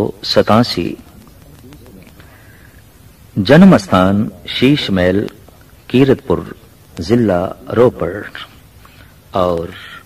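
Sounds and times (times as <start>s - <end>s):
man speaking: 0.0s - 2.5s, 3.3s - 8.6s.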